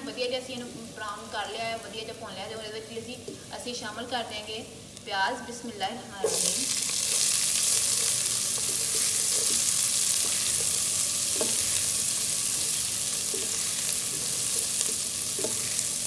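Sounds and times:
onions sizzling in hot oil: 0.0 - 5.4, 6.0 - 16.0.

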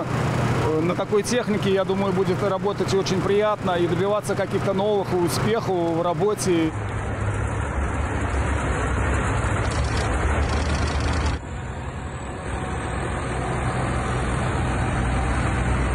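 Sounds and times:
tractor diesel engines rumbling: 0.0 - 15.9
traffic noise: 0.0 - 15.9.

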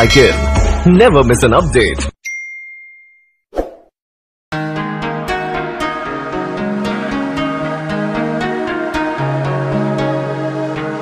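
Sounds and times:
notification bell ding: 2.2 - 3.4.

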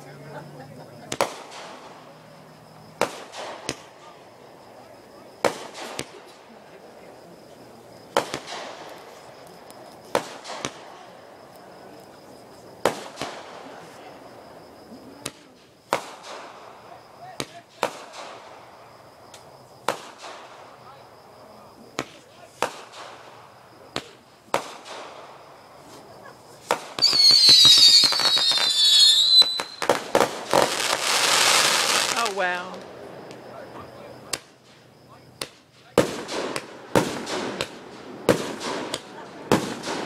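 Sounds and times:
fireworks bangs with echo: 1.0 - 2.2, 2.9 - 4.2, 5.2 - 6.6, 8.1 - 9.2, 10.1 - 11.2, 12.8 - 13.8, 15.2 - 18.8, 19.8 - 20.9, 21.9 - 25.5, 26.6 - 33.4, 35.4 - 40.0.

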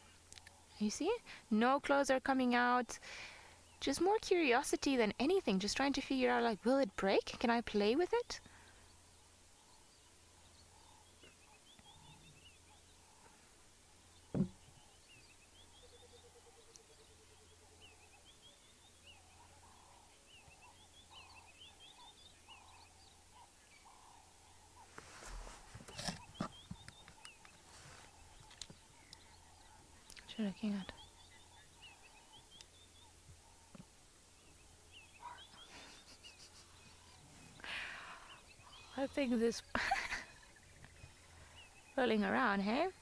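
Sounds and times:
faint bird chirps: 8.0 - 43.0.

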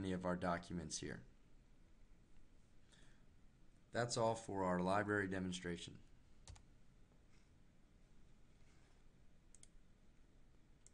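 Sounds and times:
faint computer mouse clicks: 9.5 - 9.8.

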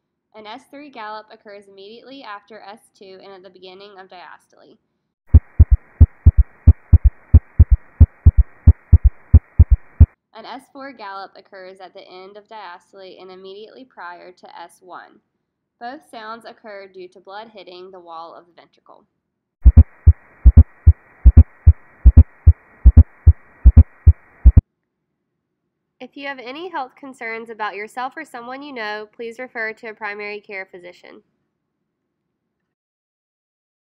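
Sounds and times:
heartbeat with gallop rhythm: 5.3 - 10.1, 19.6 - 24.6.

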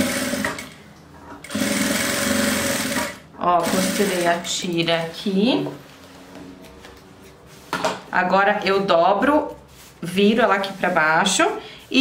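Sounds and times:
sewing machine stitching: 0.0 - 0.7, 1.4 - 4.3.

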